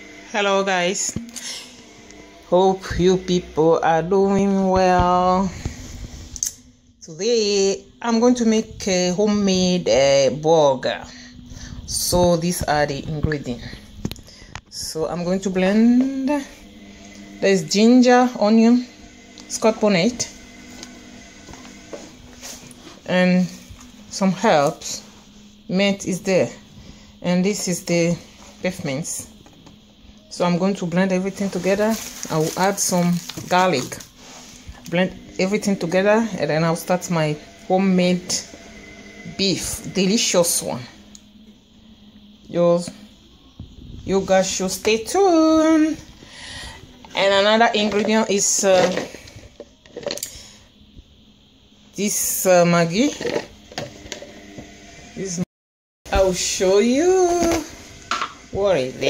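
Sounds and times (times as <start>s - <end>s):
plastic packet rustle: 31.6s - 34.1s.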